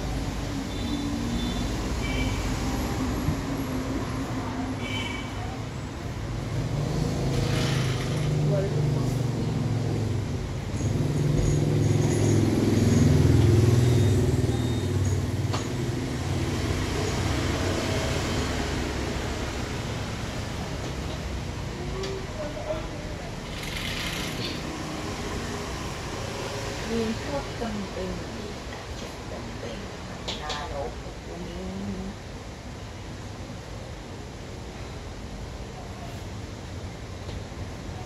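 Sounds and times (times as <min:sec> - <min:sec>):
road traffic passing: 0:00.0 - 0:38.0.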